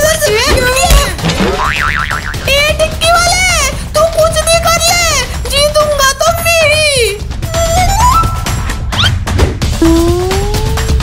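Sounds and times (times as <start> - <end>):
warbling background music: 0.0 - 11.0
cartoon boing sound effect: 1.5 - 2.4, 9.8 - 10.9.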